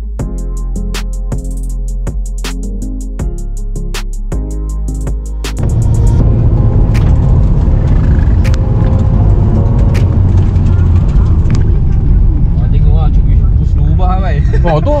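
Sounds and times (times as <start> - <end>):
road noise: 5.1 - 15.0
car engine running loudly: 5.6 - 15.0
sharp clicks: 6.9 - 9.0.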